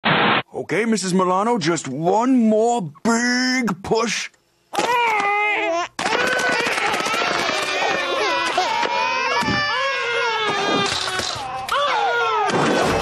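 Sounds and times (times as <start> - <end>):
babies crying: 4.8 - 13.0.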